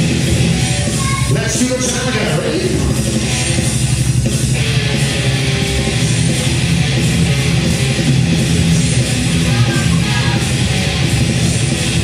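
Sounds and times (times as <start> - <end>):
distorted electric guitar riff: 0.0 - 12.0.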